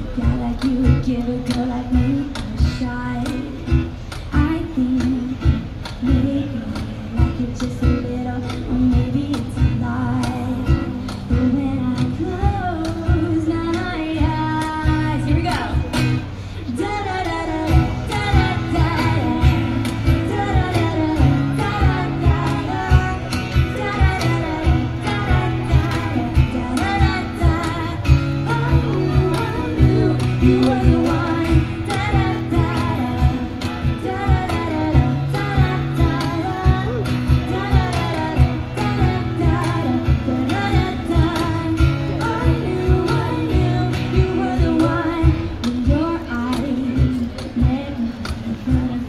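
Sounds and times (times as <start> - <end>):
strummed acoustic guitars: 0.0 - 49.0
woman singing: 0.0 - 49.0.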